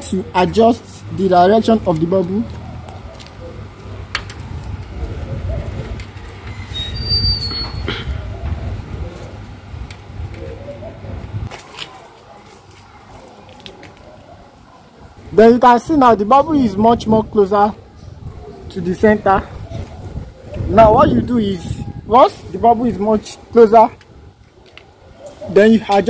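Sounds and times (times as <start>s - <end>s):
handling and wind rumble: 0.0s - 26.0s
high-pitched squeak: 6.5s - 7.9s.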